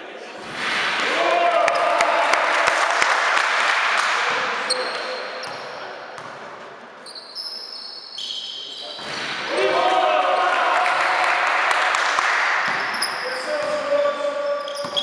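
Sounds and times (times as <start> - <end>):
short high squeaks: 7.0 - 9.3, 12.9 - 13.6, 14.4 - 15.0.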